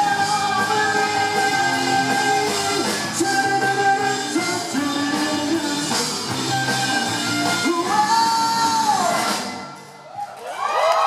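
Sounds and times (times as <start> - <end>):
live rock band: 0.0 - 10.2
audience shouting and cheering: 6.4 - 11.0.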